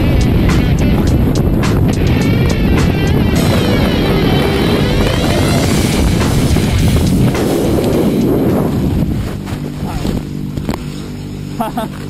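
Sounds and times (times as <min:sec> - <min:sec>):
low droning hum: 0:00.0 - 0:12.0.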